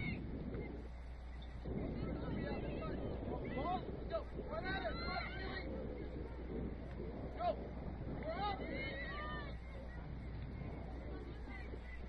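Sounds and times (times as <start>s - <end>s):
distant shouts of players and spectators: 0.0s - 12.0s
steady low rumble: 0.0s - 12.0s.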